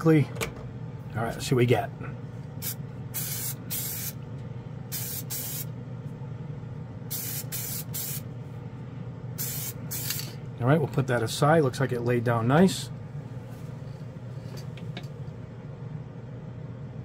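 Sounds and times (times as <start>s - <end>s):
fan humming: 0.0s - 17.0s
aerosol spray bursts: 2.6s - 4.2s, 4.9s - 5.7s, 7.1s - 8.2s, 9.4s - 10.2s.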